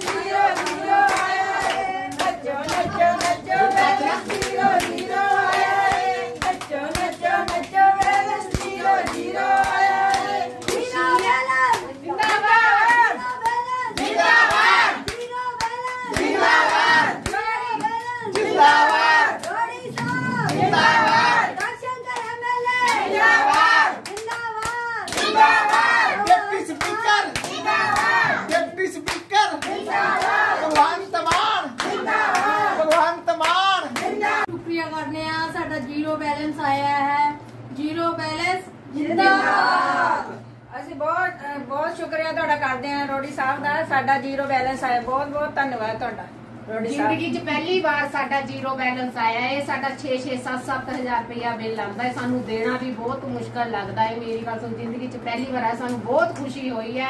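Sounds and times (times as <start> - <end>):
hand claps: 0.0 - 34.2
women singing together: 0.0 - 34.8, 38.3 - 40.5.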